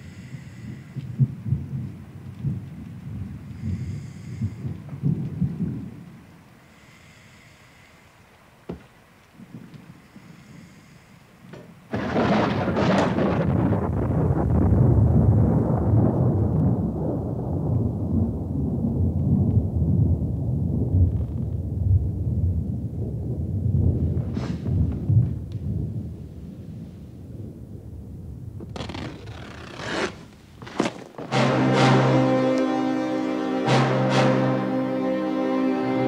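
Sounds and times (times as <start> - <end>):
thunderclap crack and rumble: 0.0 - 6.9, 8.6 - 29.1.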